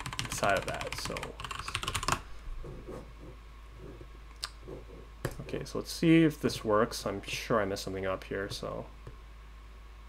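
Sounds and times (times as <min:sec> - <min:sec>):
typing on computer keyboard: 0:00.0 - 0:02.2.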